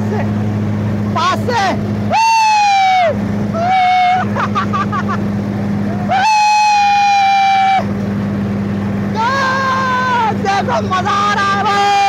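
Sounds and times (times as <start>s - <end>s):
tractor engine droning: 0.0s - 12.0s
people whooping shouts: 2.1s - 4.5s, 5.8s - 7.9s, 9.2s - 10.4s.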